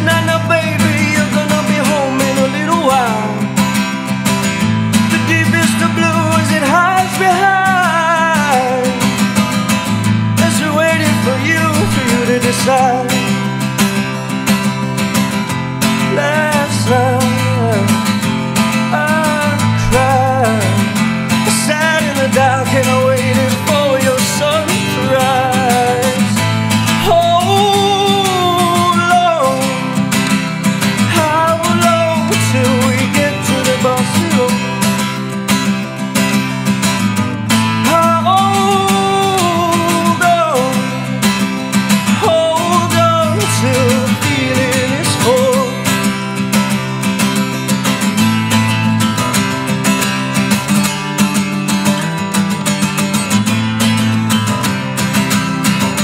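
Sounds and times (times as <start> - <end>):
man singing: 0.0 - 36.4, 37.5 - 46.4
acoustic guitar strumming: 0.0 - 56.0.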